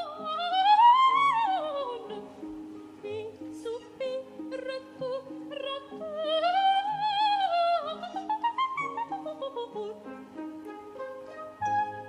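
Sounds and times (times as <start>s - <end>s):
operatic soprano singing: 0.0s - 12.0s.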